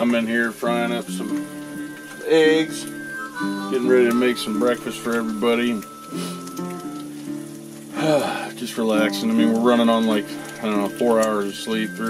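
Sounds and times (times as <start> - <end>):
background music with low notes: 0.0 - 12.0
eggs sizzling in a frying pan: 0.0 - 12.0.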